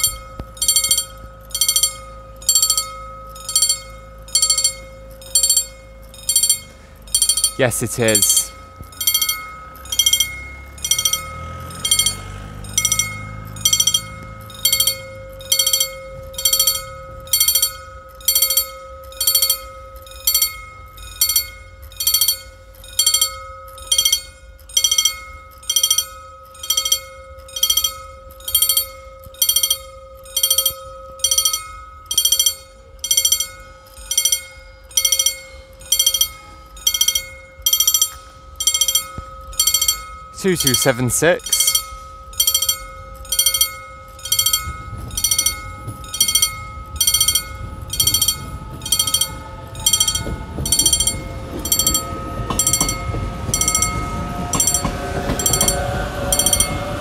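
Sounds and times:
mechanical warning bell striking: 0:00.0 - 0:57.0.

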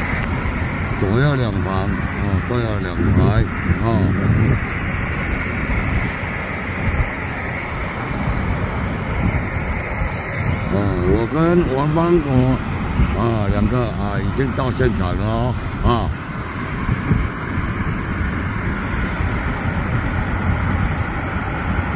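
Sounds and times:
wind on microphone: 0:00.0 - 0:21.9.

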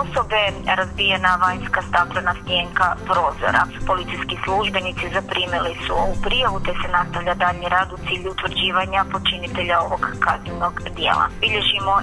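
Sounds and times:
background music: 0:00.0 - 0:12.0
person speaking: 0:00.0 - 0:12.0.

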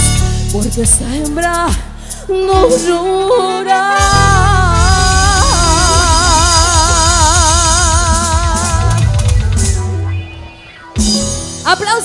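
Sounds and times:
woman singing with vibrato: 0:02.3 - 0:09.2.

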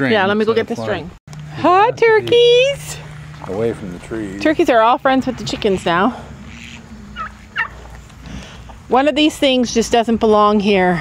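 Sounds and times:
flock murmuring: 0:01.5 - 0:07.9
young turkeys chirping: 0:06.4 - 0:08.2.

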